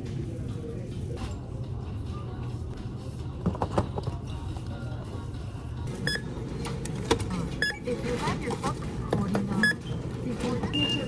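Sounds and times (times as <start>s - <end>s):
barcode scanner beeps: 6.0s - 6.3s, 7.6s - 7.9s, 9.6s - 10.0s, 10.7s - 11.0s.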